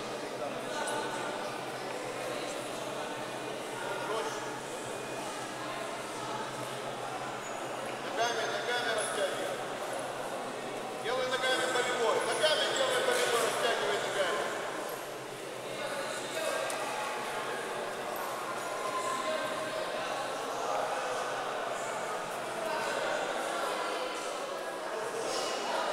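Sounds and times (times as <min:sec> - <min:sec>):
sports hall background: 0:00.0 - 0:25.9.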